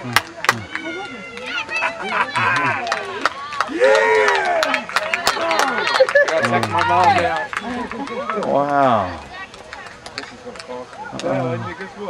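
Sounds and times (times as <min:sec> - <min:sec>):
people cheering and shouting: 0:00.0 - 0:10.0
people clapping: 0:00.0 - 0:11.6.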